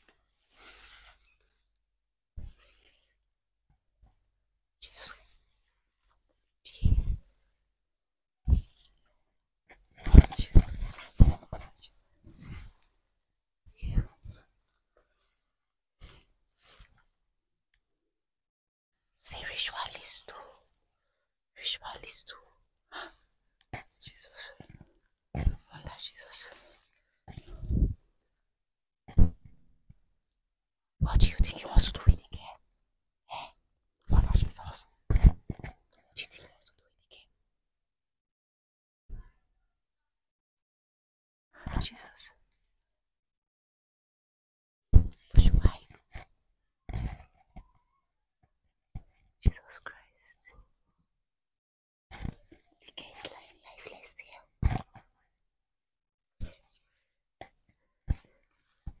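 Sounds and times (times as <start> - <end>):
person whispering: 4.8 - 5.3, 6.7 - 7.3, 10.0 - 12.7, 13.7 - 14.4, 19.2 - 20.7, 21.6 - 23.2, 23.8 - 24.8, 25.4 - 28.0, 31.0 - 32.6, 33.3 - 37.3, 41.6 - 42.4, 45.2 - 46.3, 49.4 - 50.6, 52.2 - 55.0.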